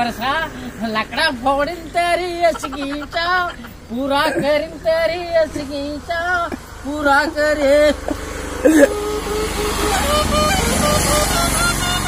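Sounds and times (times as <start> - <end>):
low engine hum: 0.0 - 12.0
brief vocal sound: 8.6 - 9.1
hand-held wind pipe melody: 8.7 - 12.0.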